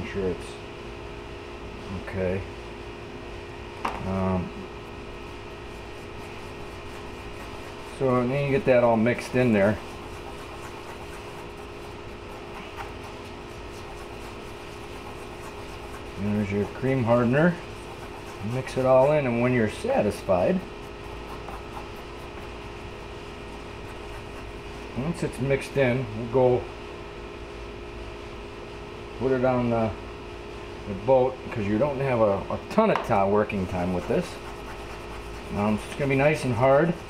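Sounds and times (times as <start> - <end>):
steady background hum: 0.0 - 37.0.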